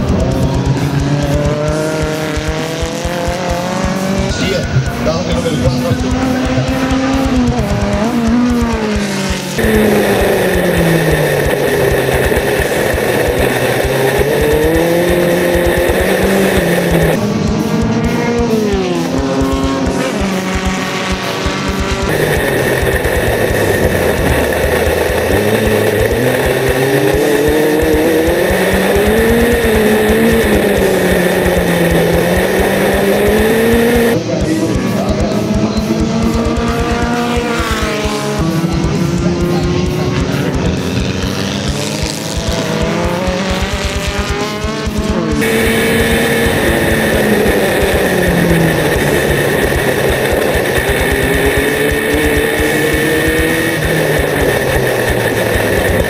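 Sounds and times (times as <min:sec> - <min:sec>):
music playing: 0:00.0 - 0:56.0
race car engines accelerating: 0:00.0 - 0:56.0.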